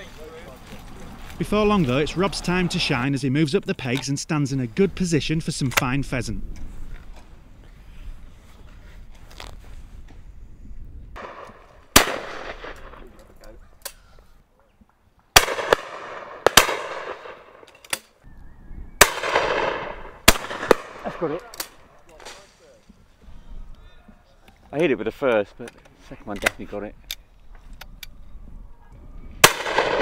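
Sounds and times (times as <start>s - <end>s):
rustling and handling noises: 6.6s - 10.3s
shotgun shot: 11.2s - 13.1s, 15.4s - 17.6s, 19.0s - 21.4s, 29.4s - 30.0s.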